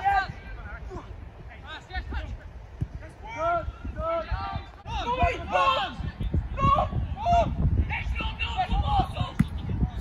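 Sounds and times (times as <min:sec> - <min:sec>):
distant players shouting: 0:02.9 - 0:09.6.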